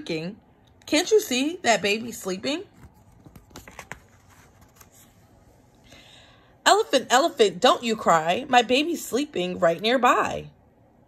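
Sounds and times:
paper page rustling: 0:02.6 - 0:05.6.

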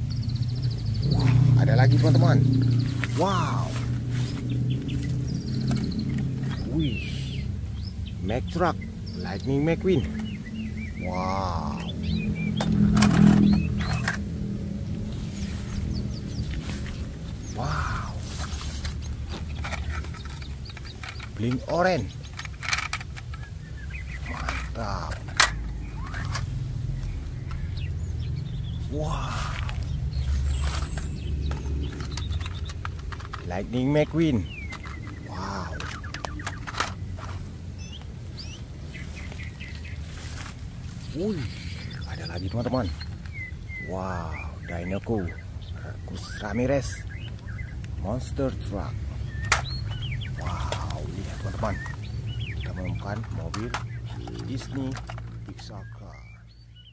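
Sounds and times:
steady low drone: 0:00.0 - 0:56.8
grass rustling: 0:00.0 - 0:56.9
high bird chirps: 0:00.0 - 0:56.9
plastic toys clattering: 0:12.6 - 0:14.3, 0:17.6 - 0:26.6, 0:29.7 - 0:37.5, 0:49.4 - 0:52.0, 0:52.6 - 0:56.0.

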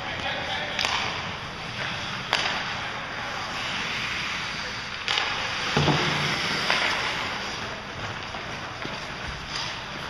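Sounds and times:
hockey sticks striking puck: 0:00.0 - 0:10.0
rink background noise: 0:00.0 - 0:10.0.

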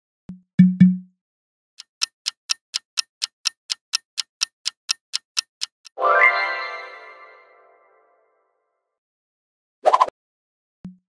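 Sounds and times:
clock ticking: 0:00.3 - 0:01.1, 0:01.8 - 0:06.0.

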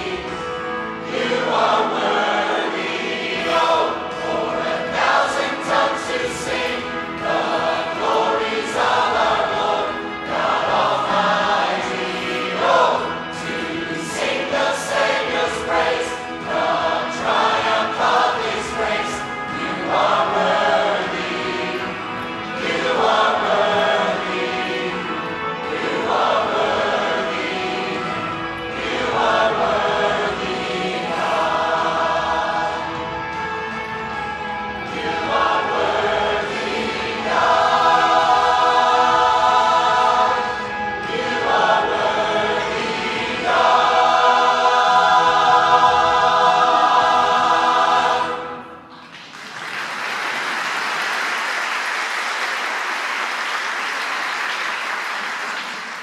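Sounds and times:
mixed choir singing in harmony: 0:00.0 - 0:49.2
audience applauding: 0:49.1 - 0:56.0.

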